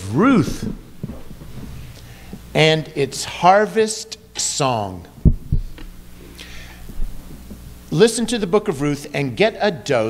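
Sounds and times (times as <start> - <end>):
steady low hum: 0.0 - 10.0
dull low thumps on microphone: 0.5 - 2.5, 5.2 - 6.2, 6.8 - 7.8
soft breath: 6.2 - 7.1.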